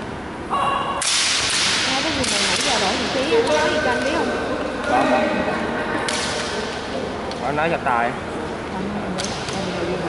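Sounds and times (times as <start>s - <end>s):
bamboo sword crack: 1.0s - 2.9s.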